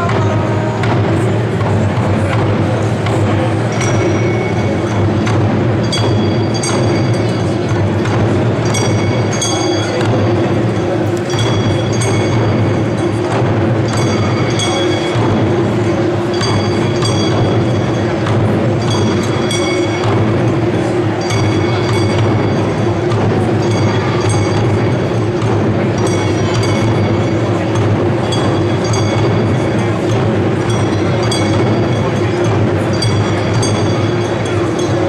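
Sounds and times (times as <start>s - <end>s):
taiko drums beating: 0.0s - 35.0s
bright metallic clink: 2.3s - 35.0s.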